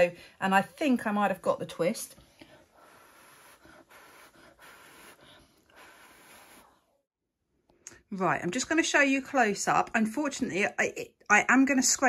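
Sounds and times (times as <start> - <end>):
person blowing breathy hiss: 2.7 - 6.9.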